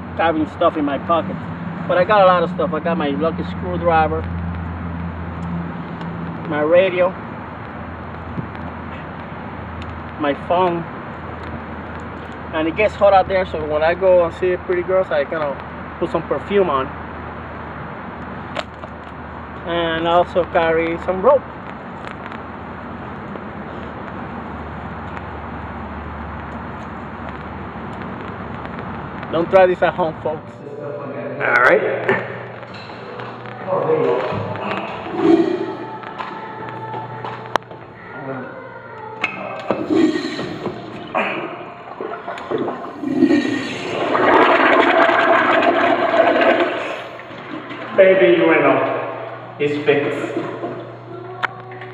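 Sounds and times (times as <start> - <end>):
outdoor background noise with hum: 0.0 - 51.9
urinal flushing: 34.1 - 35.9, 39.7 - 49.2.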